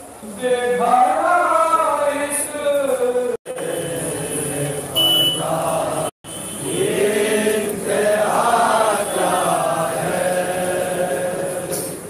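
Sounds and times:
men chanting a lament: 0.3 - 12.0.

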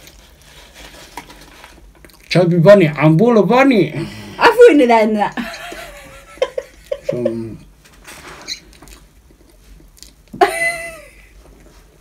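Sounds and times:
faint rustling and handling: 0.0 - 2.4
short high squeak: 8.3 - 8.8.

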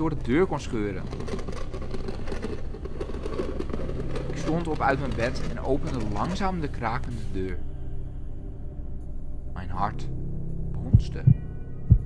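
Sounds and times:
rough crackling scratching: 0.0 - 7.4
low ambient drone: 0.0 - 12.0.

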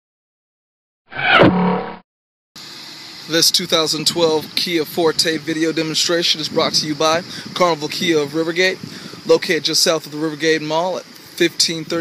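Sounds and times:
falling sweep sound effect: 1.1 - 2.0
outdoor background hiss: 2.6 - 12.0.

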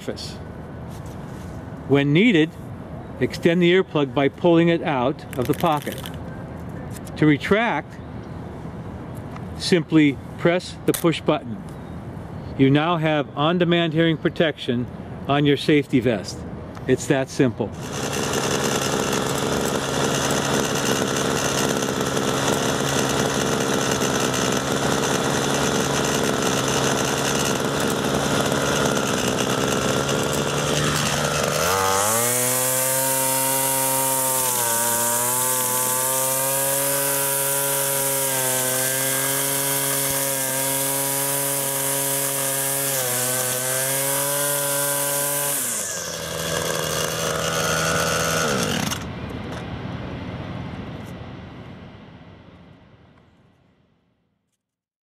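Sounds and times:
string trimmer engine: 5.3 - 6.2, 17.7 - 49.1.

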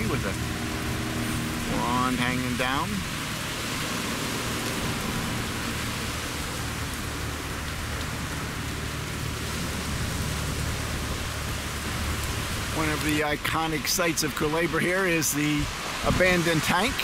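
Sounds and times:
surf breaking: 0.0 - 17.0.

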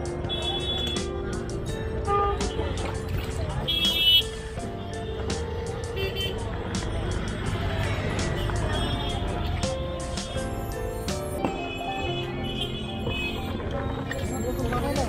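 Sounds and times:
music: 0.0 - 15.0
traffic noise: 0.0 - 15.0
people talking: 0.3 - 4.0, 14.1 - 15.0.

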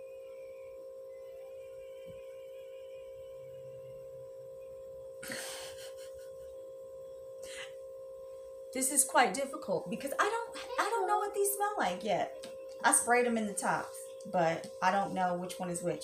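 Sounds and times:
faint steady hum: 0.0 - 16.0.

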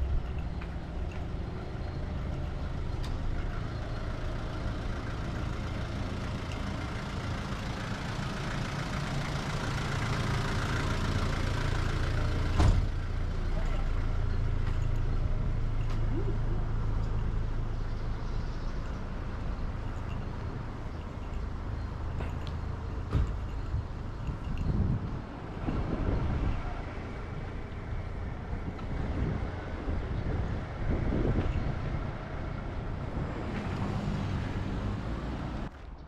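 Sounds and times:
vehicle engine idling: 0.0 - 35.7.

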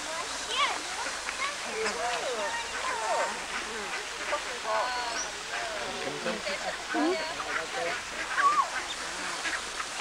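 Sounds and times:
ducks and geese calling: 0.0 - 10.0.

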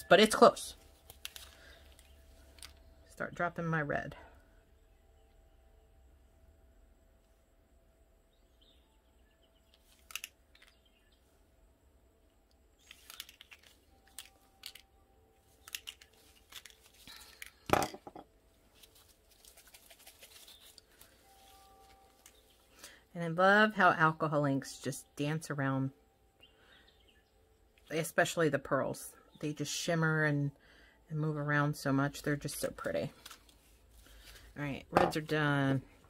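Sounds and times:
plastic bottle clicks and crinkles: 12.8 - 14.9, 15.6 - 18.2.

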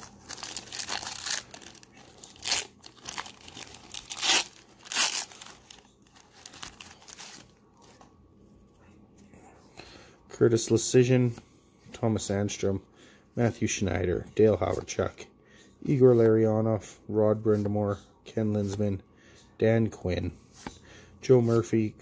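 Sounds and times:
foil wrapper tearing and crinkling: 0.0 - 7.4
rustling of cards in wrapper: 0.0 - 8.0.

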